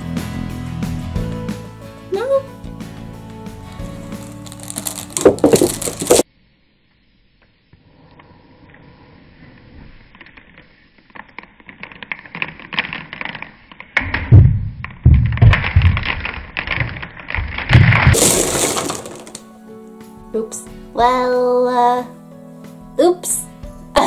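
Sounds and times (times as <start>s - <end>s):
background music: 0.0s - 6.2s, 18.2s - 24.0s
marker pens clattering on floor: 4.1s - 6.2s, 18.0s - 19.4s.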